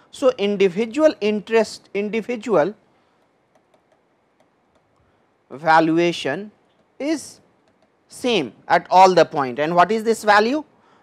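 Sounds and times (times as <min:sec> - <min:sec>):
stylus tapping on pen tablet: 0:03.2 - 0:05.0, 0:06.6 - 0:08.1.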